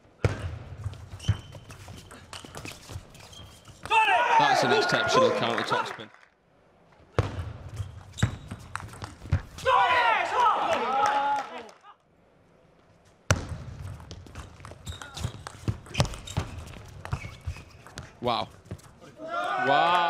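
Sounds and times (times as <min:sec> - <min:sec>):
loud drawn-out shout: 0:03.9 - 0:05.9, 0:09.6 - 0:11.8, 0:19.1 - 0:20.0.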